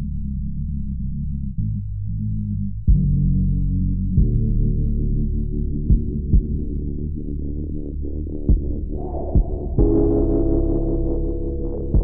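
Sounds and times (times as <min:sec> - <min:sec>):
deep bass: 0:00.0 - 0:12.0
heavy bass hit: 0:05.7 - 0:07.2, 0:08.3 - 0:12.0.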